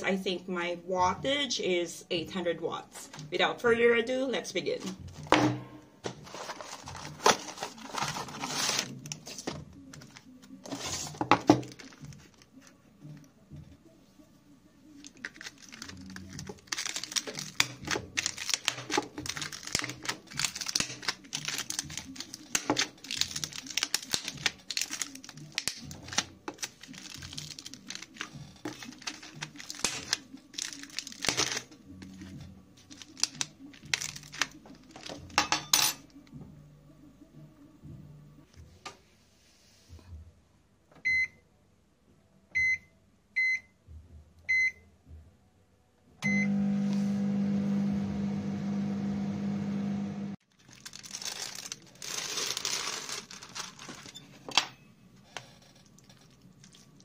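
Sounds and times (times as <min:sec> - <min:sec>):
cardboard box rustling and tearing: 0:06.2 - 0:09.4, 0:15.3 - 0:31.6, 0:50.6 - 0:54.1
fork jabbing plastic film: 0:15.0 - 0:32.2, 0:32.9 - 0:35.3, 0:50.5 - 0:54.1.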